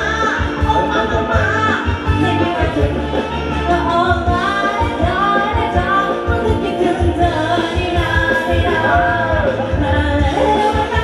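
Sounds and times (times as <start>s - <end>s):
live dance band playing: 0.0s - 11.0s
person singing: 0.0s - 11.0s
steady drum beat: 0.0s - 11.0s.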